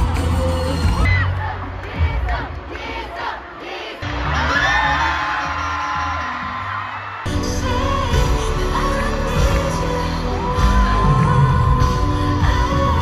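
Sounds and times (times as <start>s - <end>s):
crowd screaming and cheering: 0.0s - 13.0s
loud pop music: 0.0s - 13.0s.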